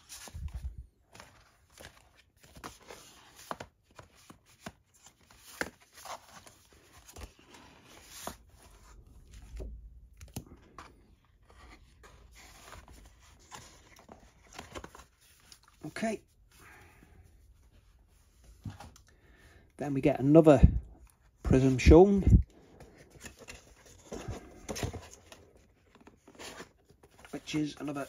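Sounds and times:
paper and card rustling: 0.0s - 16.7s, 20.6s - 28.0s.

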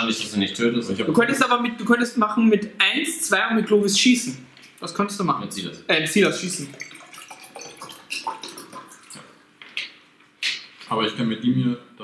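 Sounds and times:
water pouring into a glass: 6.6s - 9.4s.

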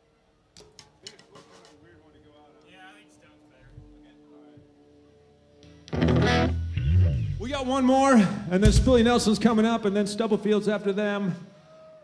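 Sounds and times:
faint voices: 0.0s - 5.6s.

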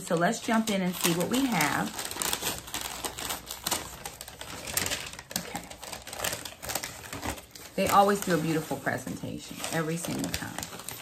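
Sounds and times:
packaging clicks and rustles: 0.0s - 11.0s.

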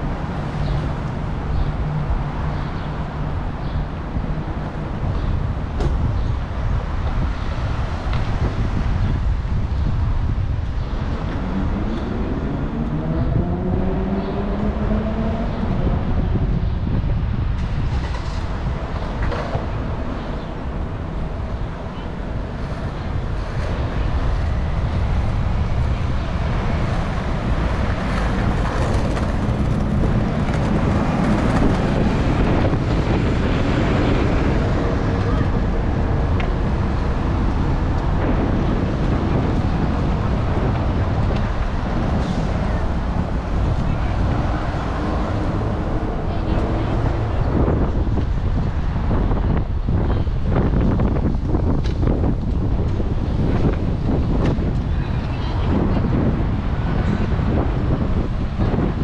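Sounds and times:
cars passing: 0.0s - 59.0s
wind buffeting microphone: 0.0s - 59.0s.

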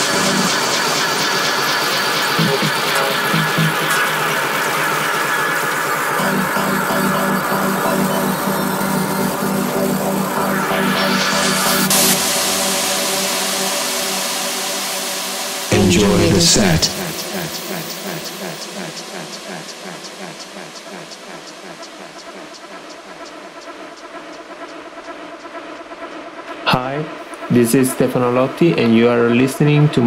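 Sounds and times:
noisy electronic dance music: 0.0s - 24.3s
repeating low pulse: 0.0s - 30.0s
held low tone: 6.2s - 15.0s, 15.7s - 18.9s.

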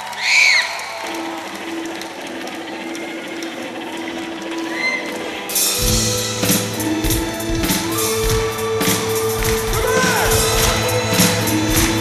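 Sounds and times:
concert crowd noise: 0.0s - 12.0s
band with drums and cymbals: 5.5s - 12.0s.

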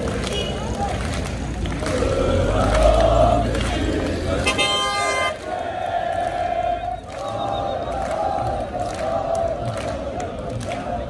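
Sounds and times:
crowd chanting: 0.0s - 11.0s
vehicle horn: 0.2s - 0.8s, 4.4s - 5.5s.

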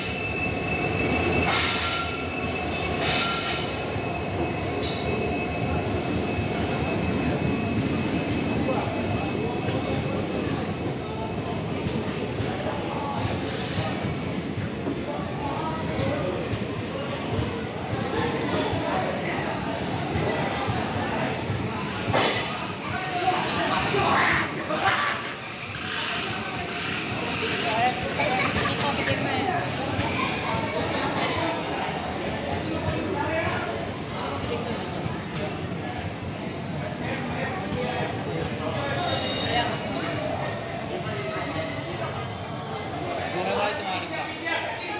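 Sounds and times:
high-pitched wheel squeal: 0.0s - 10.8s, 37.6s - 44.9s
train wheels rumbling on rails: 0.0s - 44.9s
voices: 0.0s - 44.9s.

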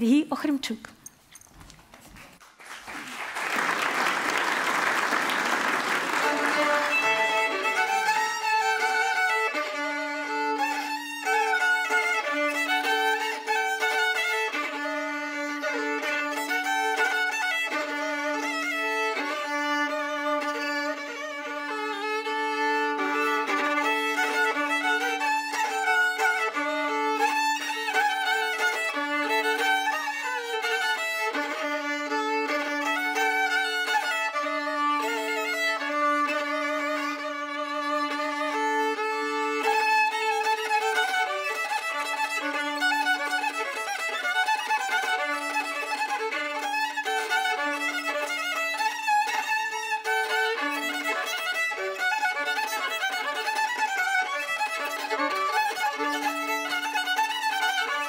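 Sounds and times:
solo violin folk tune: 4.5s - 58.0s.

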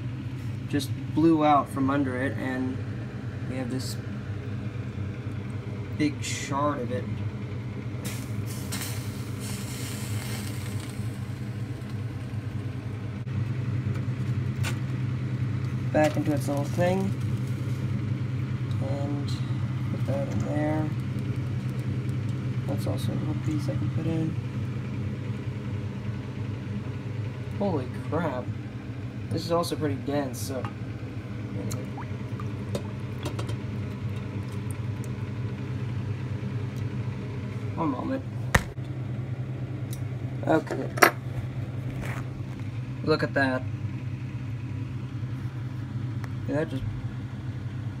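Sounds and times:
low hum: 0.0s - 48.0s.

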